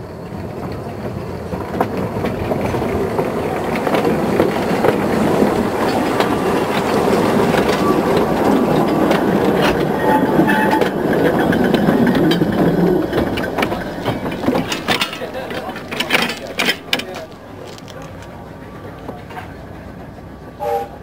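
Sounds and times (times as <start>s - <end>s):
train wheels clattering over rail joints: 0.0s - 20.6s
wheel squeals: 5.8s - 18.3s.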